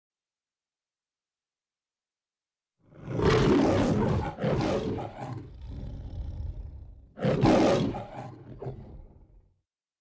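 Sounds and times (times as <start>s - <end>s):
lion roaring: 2.9s - 9.4s
lion growling low: 3.0s - 9.4s.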